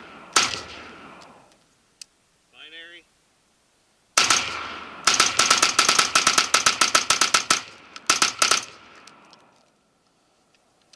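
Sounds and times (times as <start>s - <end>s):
gunshot echo: 0.0s - 1.5s, 4.2s - 9.3s
rifle shots: 0.0s - 1.5s, 4.2s - 9.3s.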